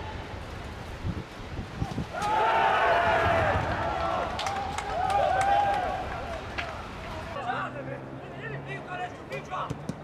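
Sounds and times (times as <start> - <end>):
people yelling in celebration: 2.2 - 6.8.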